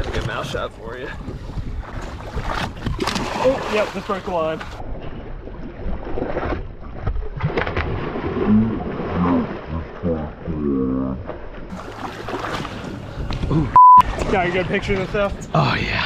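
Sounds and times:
water splashing against boat hull: 0.0s - 10.4s, 11.2s - 15.4s.

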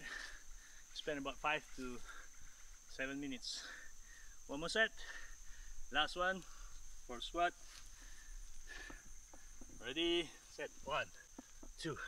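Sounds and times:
insects trilling: 0.0s - 12.0s
pulsing insect chirp: 0.0s - 12.0s.

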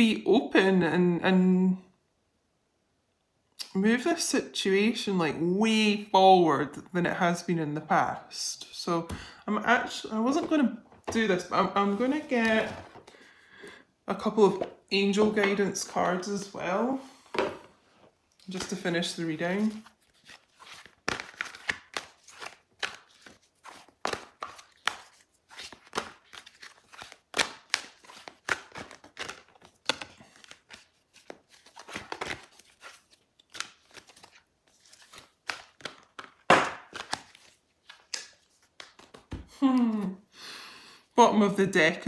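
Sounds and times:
cards being shuffled: 18.5s - 40.1s.

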